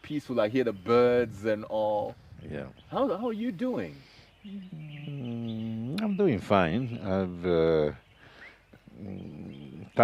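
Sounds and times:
faint bird chirp: 0:00.0 - 0:10.0
man humming hesitantly: 0:04.4 - 0:06.2, 0:08.8 - 0:10.0.

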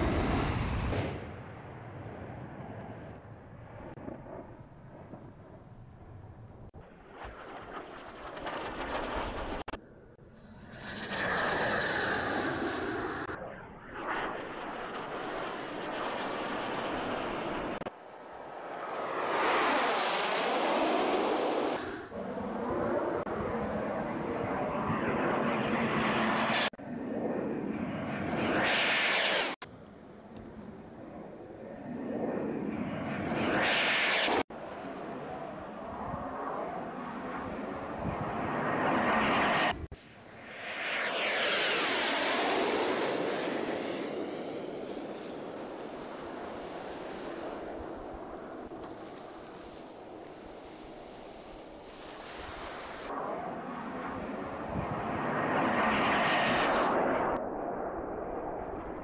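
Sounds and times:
launch blast: 0:00.0 - 0:02.7, 0:06.9 - 0:09.8
jet engine whine flying past: 0:00.0 - 0:59.0.

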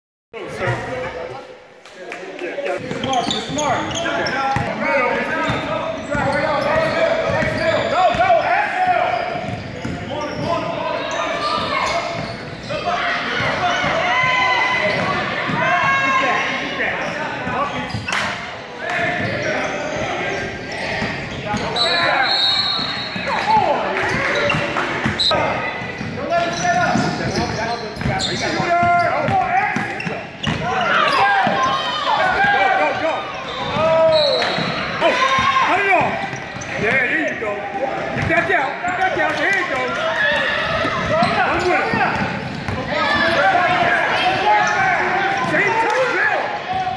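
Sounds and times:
indistinct shouting and chatter: 0:00.4 - 0:46.9.

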